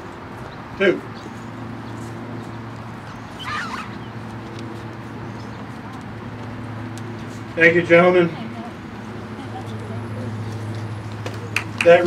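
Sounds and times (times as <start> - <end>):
short wavering bird call: 3.1 - 4.1.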